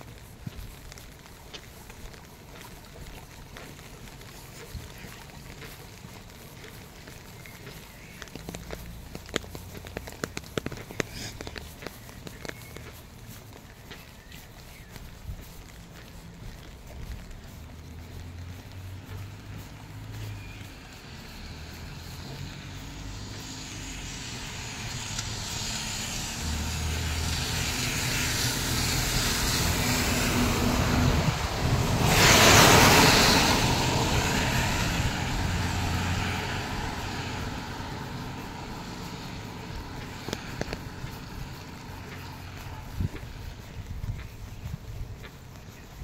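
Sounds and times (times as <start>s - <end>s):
tyres hissing on wet road: 0.0s - 46.0s
vehicle engine hum: 0.0s - 46.0s.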